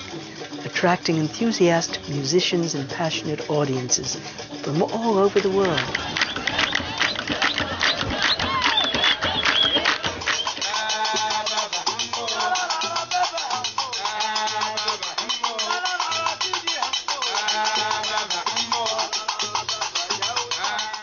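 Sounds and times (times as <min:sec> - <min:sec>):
plucked lute bass line: 0:00.0 - 0:10.3
clattering percussion: 0:00.0 - 0:21.0
voices singing: 0:00.0 - 0:21.0
hand-clapping: 0:05.3 - 0:21.0.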